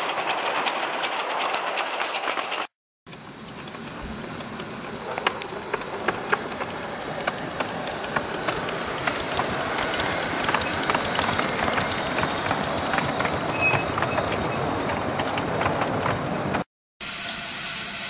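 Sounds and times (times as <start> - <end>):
wheels clicking on track: 0.0 - 16.7
steam hiss: 3.1 - 18.0.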